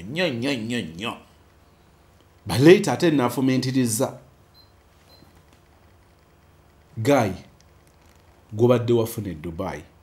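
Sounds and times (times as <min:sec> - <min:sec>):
man speaking: 0:02.4 - 0:04.3.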